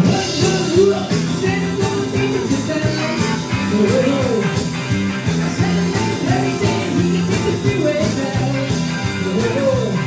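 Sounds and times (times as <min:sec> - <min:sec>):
bass guitar: 0:00.0 - 0:10.0
electric guitars: 0:00.0 - 0:10.0
man singing lead vocals: 0:00.0 - 0:10.0
steady drum beat: 0:00.0 - 0:10.0.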